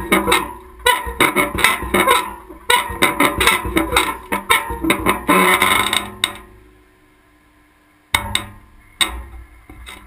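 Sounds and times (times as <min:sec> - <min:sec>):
metal bar creaking and clanking: 0:00.0 - 0:06.6, 0:08.2 - 0:10.0.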